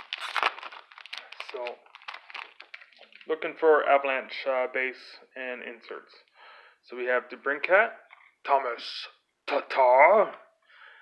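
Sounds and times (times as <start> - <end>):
plastic wrapper crinkling: 0.0 - 3.6.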